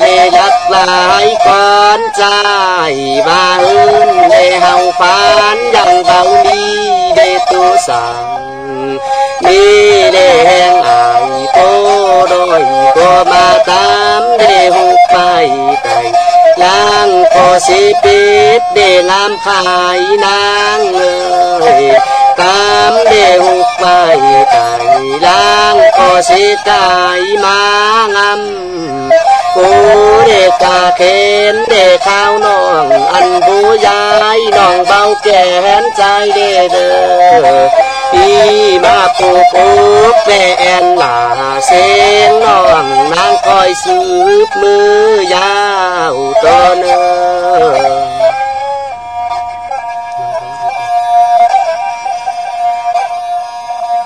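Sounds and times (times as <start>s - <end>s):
person singing ornamented notes: 0.0s - 54.0s
reedy wind instrument melody: 0.0s - 54.0s
steady accompanying drone: 2.9s - 54.0s.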